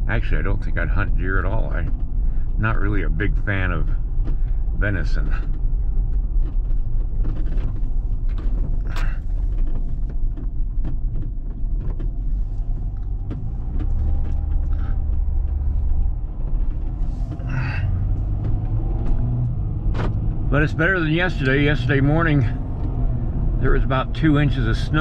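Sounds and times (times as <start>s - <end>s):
van engine and road rumble: 0.0s - 25.0s
light clicks and rattles: 0.2s - 25.0s
tyres on gravel: 4.8s - 25.0s.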